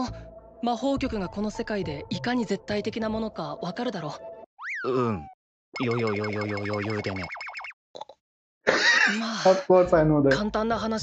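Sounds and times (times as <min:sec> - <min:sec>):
comic warbling tone: 0:04.6 - 0:07.8.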